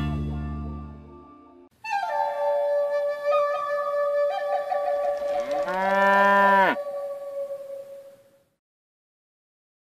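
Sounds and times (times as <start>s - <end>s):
held flute-like note: 1.8s - 5.6s
cow mooing: 5.6s - 6.9s.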